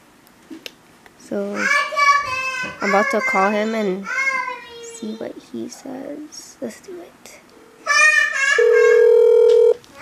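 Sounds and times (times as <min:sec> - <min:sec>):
brief high tone: 0:08.6 - 0:09.8
phone ringback tone: 0:08.6 - 0:09.8.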